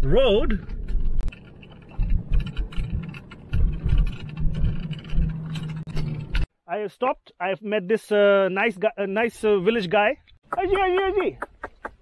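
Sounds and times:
car engine noise: 0.0s - 6.5s
car bumps and rattles: 0.5s - 6.5s.

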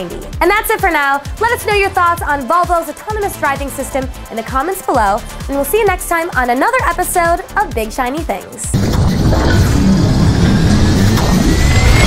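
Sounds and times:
dense rumbling whoosh: 8.8s - 12.0s
thin whine rising in pitch: 8.8s - 12.0s.

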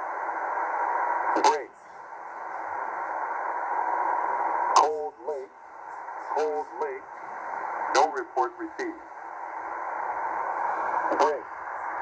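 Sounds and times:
shortwave radio hiss: 0.0s - 12.0s.

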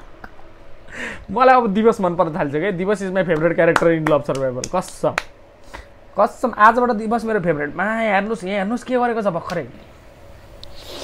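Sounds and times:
person speaking: 6.1s - 9.9s.

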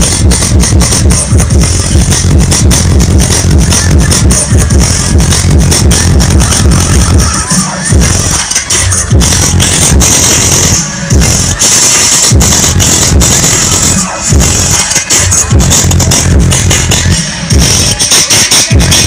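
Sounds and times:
loud electronic dance music: 0.0s - 19.0s.

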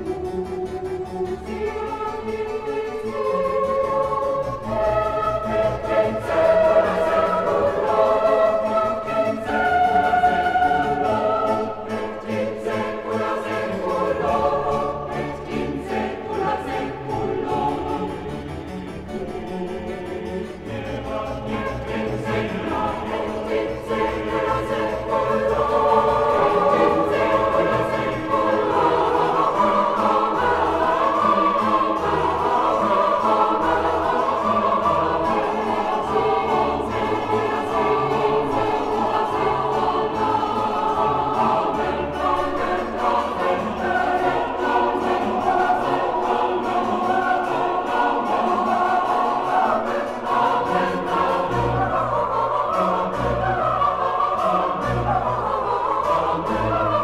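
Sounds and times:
chamber orchestra: 0.0s - 57.0s
choir singing: 0.0s - 57.0s.

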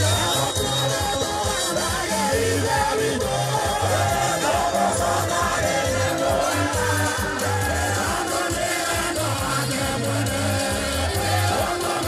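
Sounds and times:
gospel singing: 0.0s - 12.0s
steady bass line: 0.0s - 12.0s.

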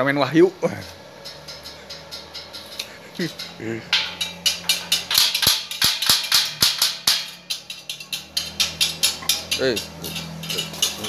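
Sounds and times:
hammer striking steel bars: 1.2s - 11.0s.

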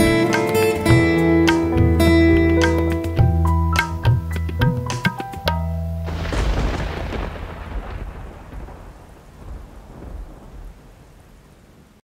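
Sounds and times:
steady rain: 6.0s - 12.0s
thunder rumbling: 6.0s - 12.0s.

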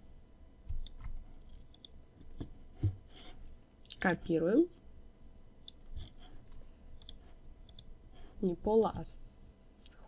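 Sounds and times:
computer mouse clicks: 0.7s - 2.0s, 5.6s - 8.6s.

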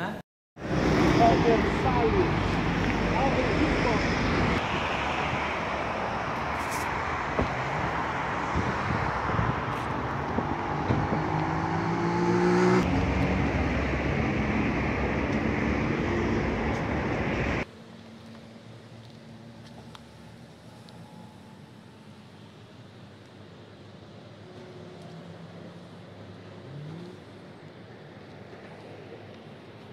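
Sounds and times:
car engine accelerating: 0.6s - 17.7s
cars passing: 0.6s - 29.9s.

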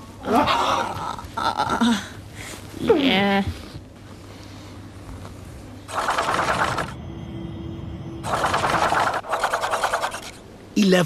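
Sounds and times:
low steady hum: 0.0s - 11.0s
fast mechanical rattle: 5.9s - 7.0s, 8.2s - 10.4s.

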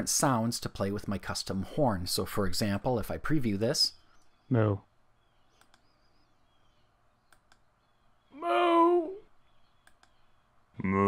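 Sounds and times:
mouse clicks: 5.5s - 6.0s, 7.2s - 7.7s, 9.6s - 10.3s.

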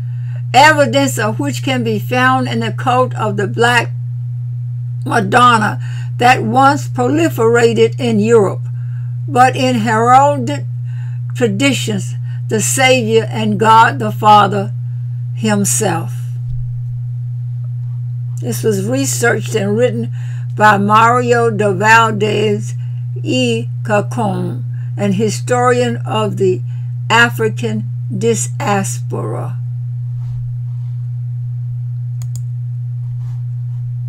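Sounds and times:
electrical hum: 0.0s - 34.0s
faint clicks: 32.2s - 32.5s.

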